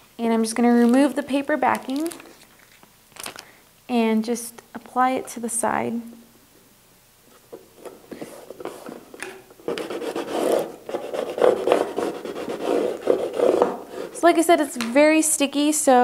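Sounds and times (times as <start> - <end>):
plastic scraper scraping tape: 9.7 - 14.2.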